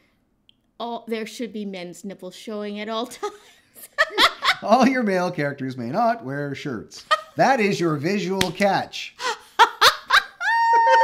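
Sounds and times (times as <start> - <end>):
woman laughing hard: 3.2 - 4.6, 9.2 - 11.0.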